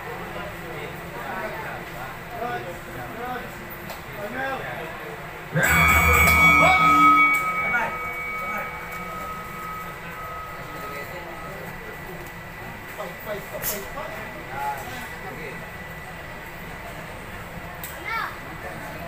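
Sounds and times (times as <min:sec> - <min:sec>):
spectators chattering: 0:00.0 - 0:13.5
low buzz: 0:05.5 - 0:12.0
boxing bell ringing: 0:05.5 - 0:12.2.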